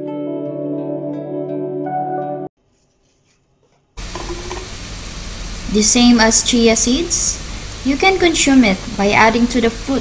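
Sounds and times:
room noise hiss: 4.0 - 10.0.

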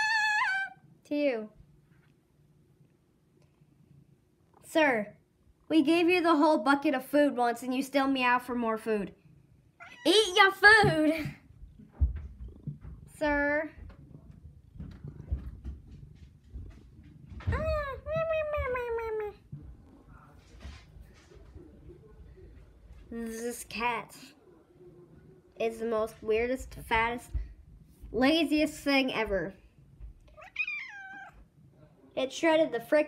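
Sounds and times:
cat meowing: 9.8 - 10.4, 30.3 - 31.4.

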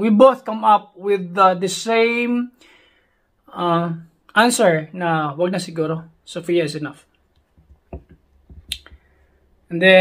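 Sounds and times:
faint taps: 7.3 - 9.1.

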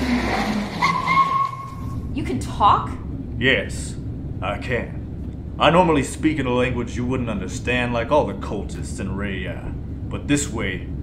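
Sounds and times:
tyre squeal: 0.0 - 2.1
falling engine note: 0.0 - 2.4.

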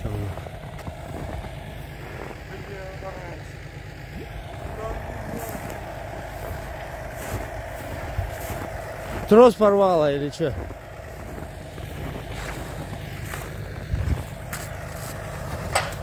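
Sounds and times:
vehicle engine rumbling: 0.0 - 16.0.

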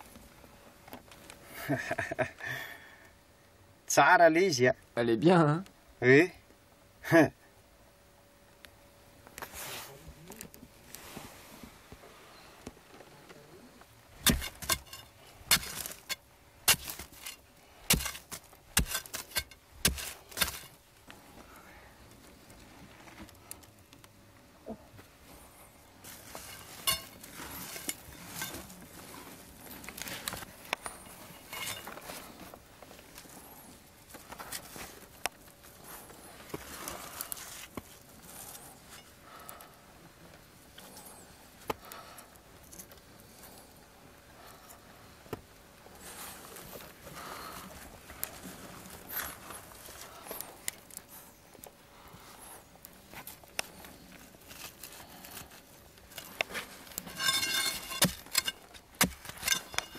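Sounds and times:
digging bar and shovel on rock: 14.2 - 20.8, 26.0 - 28.9, 30.0 - 32.3, 56.1 - 59.9.

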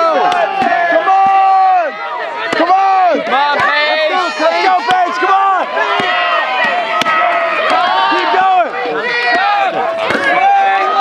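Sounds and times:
spectators shouting encouragement: 0.0 - 11.0
axe chopping log: 9.2 - 11.0.

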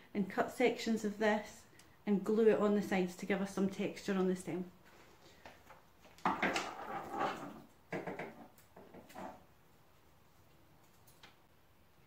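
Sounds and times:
rustling and scraping on countertop: 4.8 - 9.5.

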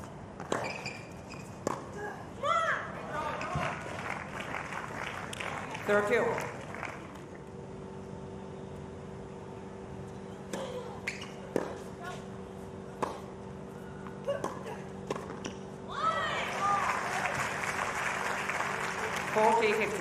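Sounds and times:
crowd applauding and cheering: 3.2 - 7.2, 16.4 - 20.0
tennis ball hits and bounces: 10.5 - 11.9, 12.9 - 13.3, 14.0 - 15.6.

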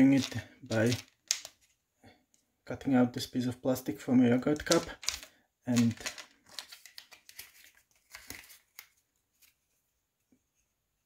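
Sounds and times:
thin plastic sheet crinkling: 0.0 - 1.8, 4.5 - 9.6.

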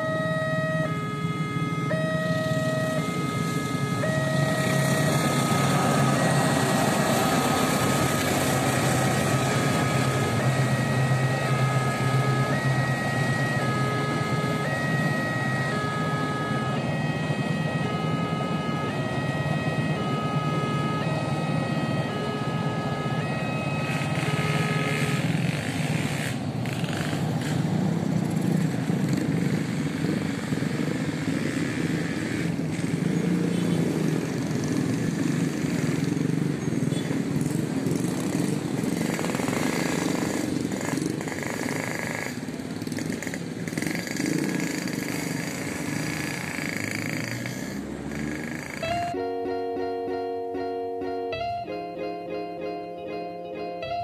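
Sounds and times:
passing train rumble: 0.0 - 54.0.

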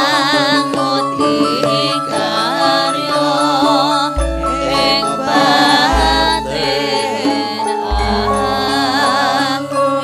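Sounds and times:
drum strokes: 0.0 - 9.6
held instrumental notes: 0.0 - 10.0
ornamented vocal singing: 0.0 - 10.0.

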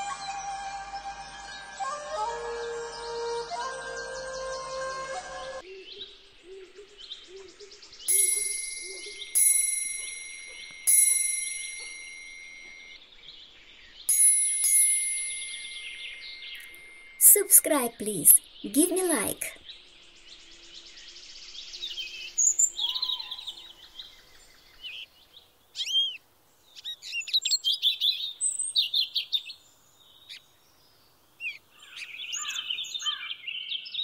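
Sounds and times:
birds chirping: 1.2 - 20.4
bell ringing high tone: 8.1 - 13.0, 14.1 - 19.5.

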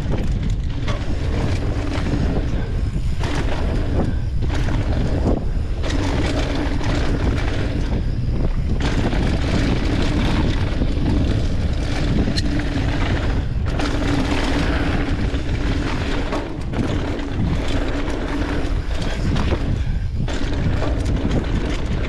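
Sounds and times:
steady buzz: 0.0 - 22.0
tyres rattling over dirt trail: 0.0 - 22.0
wind buffeting microphone: 0.0 - 22.0.

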